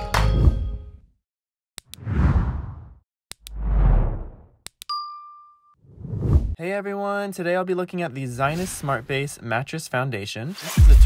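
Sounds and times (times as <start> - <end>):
whooshes: 2.0 - 4.5
ding: 4.9 - 5.8.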